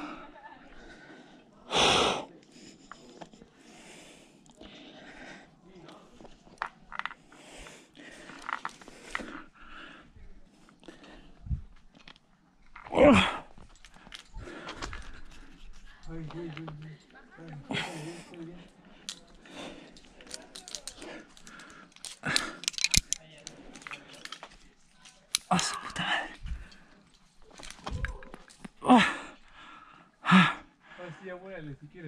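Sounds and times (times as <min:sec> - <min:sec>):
person breathing hard: 0:00.0 - 0:02.4, 0:03.6 - 0:05.6, 0:07.1 - 0:11.8, 0:13.1 - 0:16.0, 0:17.7 - 0:24.5, 0:27.6 - 0:31.1
person crying out strained: 0:12.9 - 0:13.4, 0:28.0 - 0:29.3.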